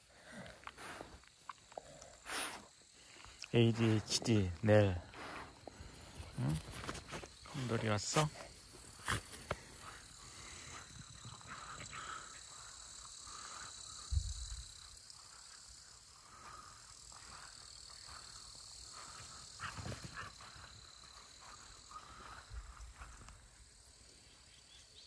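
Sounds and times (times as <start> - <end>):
high-pitched insect drone: 0.0 - 25.0.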